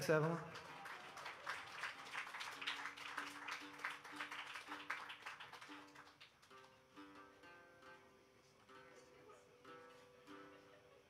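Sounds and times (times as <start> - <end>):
audience clapping: 0.0 - 6.9
soft guitar notes: 6.5 - 11.0.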